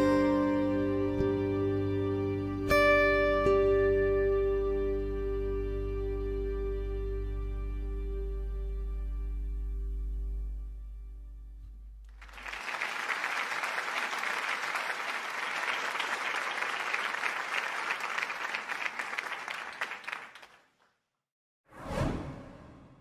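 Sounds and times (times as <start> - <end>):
background music: 0.0 - 10.3
applause: 12.1 - 21.0
short whoosh: 21.7 - 23.0.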